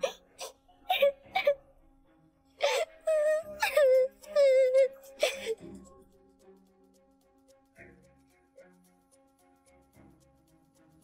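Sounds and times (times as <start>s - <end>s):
girl sobbing: 0.0s - 1.6s, 2.6s - 5.7s
soft background music: 0.0s - 11.0s.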